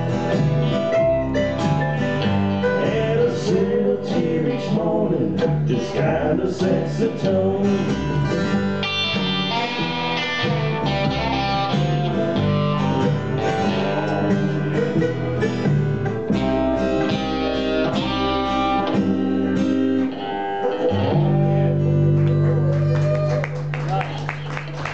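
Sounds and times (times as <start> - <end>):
mandolin picking: 0.0 - 5.9, 7.9 - 22.7
acoustic country band playing: 0.0 - 24.9
bass line: 0.0 - 24.9.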